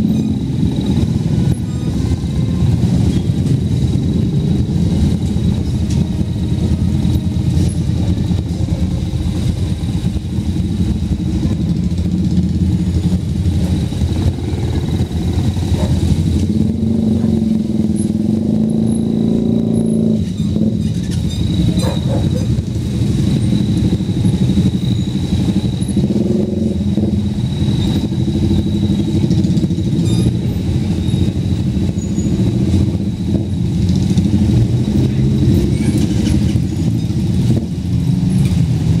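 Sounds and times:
motorcycle engines running: 0.0s - 39.0s.

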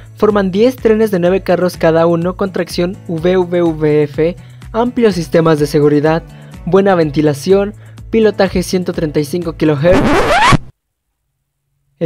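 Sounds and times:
background music: 0.0s - 10.6s
record scratch: 9.9s - 10.7s.

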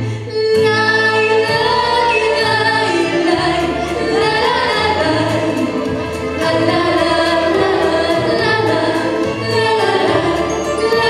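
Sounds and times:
vocal ensemble singing: 0.0s - 11.0s
music with steady beat: 0.5s - 11.0s.

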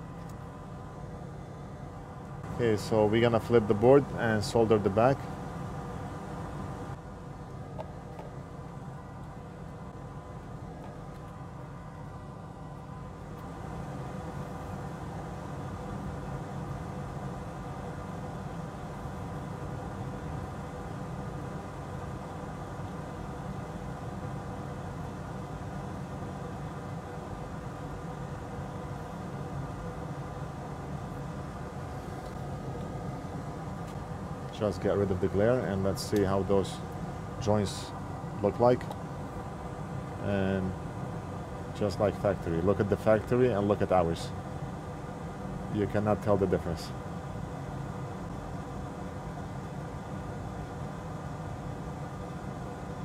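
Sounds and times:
faint steady tones: 0.0s - 53.0s
low machine hum: 0.0s - 53.0s.

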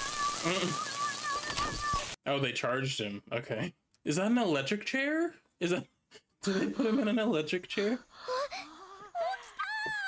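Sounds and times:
children crying out excitedly: 0.0s - 2.2s.

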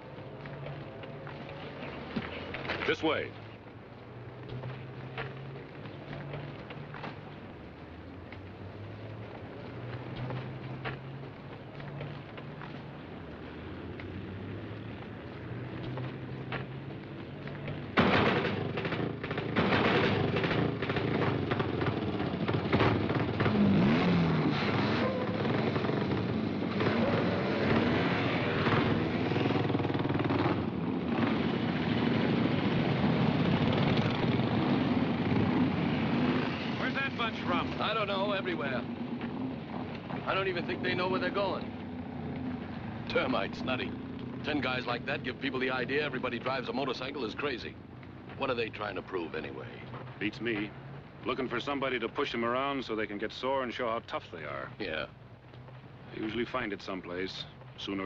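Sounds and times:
motorcycle engines revving: 0.0s - 58.0s
motorcycles idling: 0.0s - 58.0s.

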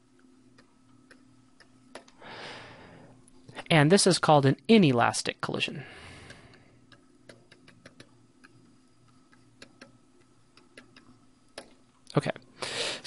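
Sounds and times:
low steady hum: 0.0s - 13.0s
stylus clicking on drawing tablet: 6.3s - 11.8s.

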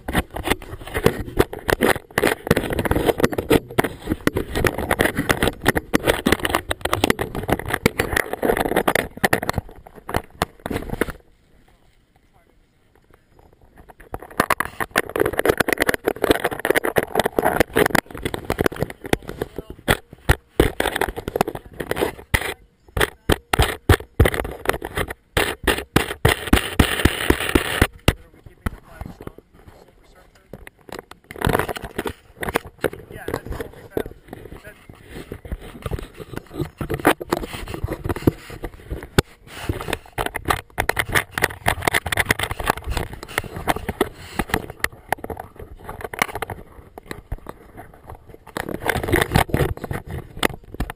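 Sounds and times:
camera housing clicks and scrapes: 0.0s - 11.2s, 13.8s - 29.4s, 30.5s - 50.9s
muffled voices: 27.9s - 30.7s.

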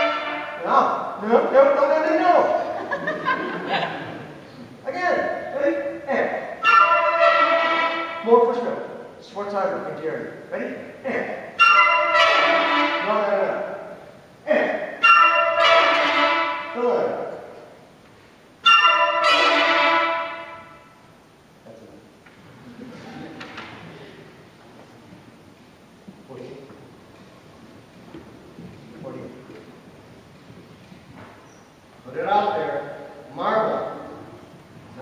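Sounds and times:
brass band playing loud chords: 0.0s - 2.7s, 5.2s - 9.1s, 11.4s - 14.0s, 14.6s - 17.6s, 18.6s - 21.0s.

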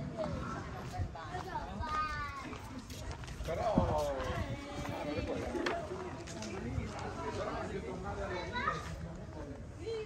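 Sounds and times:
voices of people passing: 0.0s - 10.0s.

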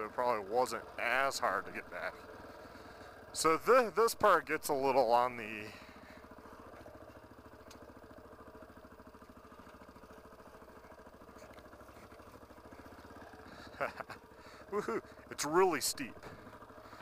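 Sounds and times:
motorcycle engine running at low revs: 0.0s - 17.0s.

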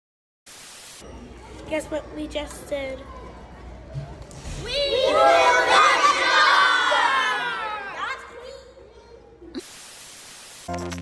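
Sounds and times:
tv static hiss: 0.5s - 1.0s, 9.6s - 11.0s
children shouting a cheer: 4.6s - 8.1s.

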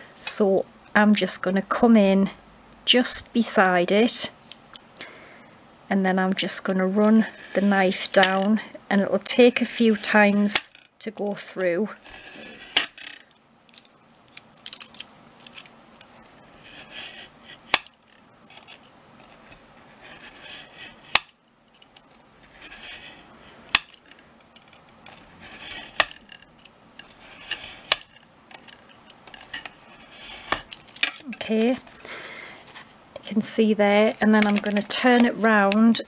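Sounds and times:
craft knife scraping along ruler: 7.2s - 8.3s, 9.3s - 10.6s, 12.0s - 13.2s, 20.0s - 21.1s, 22.5s - 23.3s, 25.1s - 26.4s, 27.0s - 28.0s, 29.4s - 30.7s.

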